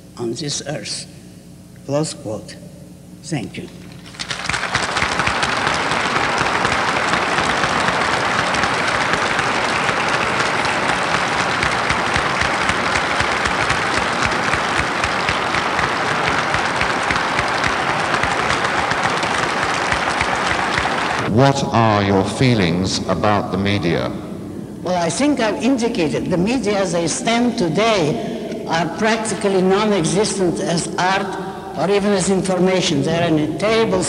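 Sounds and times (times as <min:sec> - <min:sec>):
audience applauding: 0:03.9 - 0:21.9.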